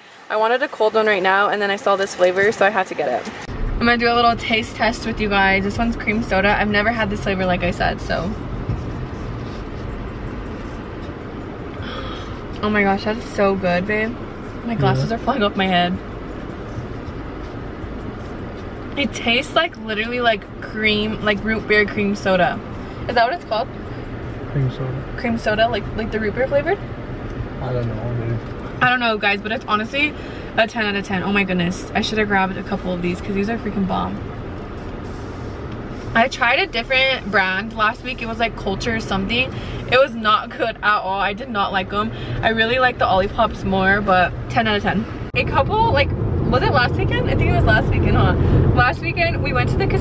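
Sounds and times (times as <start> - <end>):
car engine rumble inside cabin: 3.4 - 50.0.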